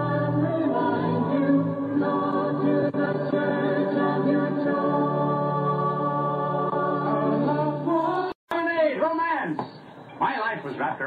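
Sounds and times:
choir singing held notes: 0.0 - 8.4.

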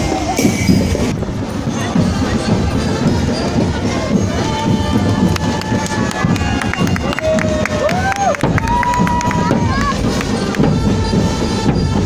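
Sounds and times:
marching bass and snare drums: 0.0 - 12.0
street crowd noise: 0.0 - 12.0.

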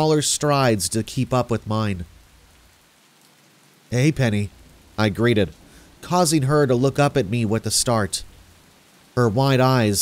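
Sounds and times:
faint steady rain: 0.0 - 10.0.

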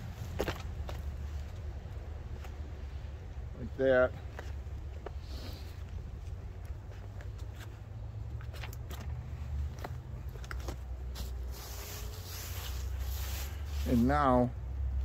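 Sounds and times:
boots and rope clicks and scuffs: 0.0 - 3.3, 4.1 - 14.3
low steady rumble: 0.0 - 15.0
rustling hiss: 11.0 - 14.5.

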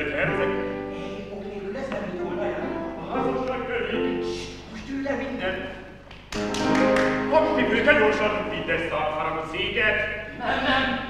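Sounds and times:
piano accompaniment: 0.0 - 5.7, 6.3 - 9.0.

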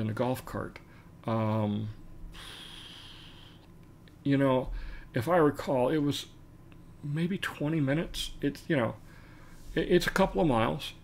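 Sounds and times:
man breathing: 2.3 - 3.7, 4.7 - 5.1, 9.0 - 9.7.

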